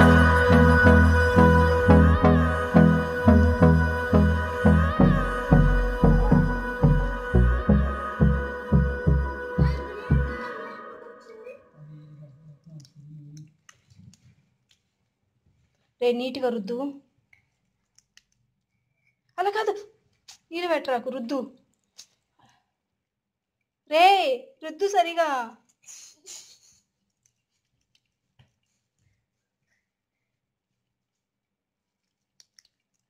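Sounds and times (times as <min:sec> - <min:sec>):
soapy hands rubbing: 0:25.8 - 0:29.6.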